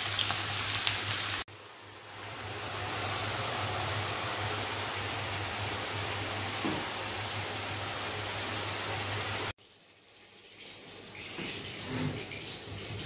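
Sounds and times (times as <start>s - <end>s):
hot oil sizzling: 0.0s - 13.0s.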